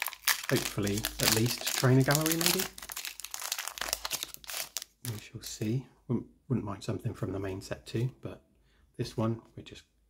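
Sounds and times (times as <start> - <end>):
foil wrapper tearing and crinkling: 0.0 - 5.2.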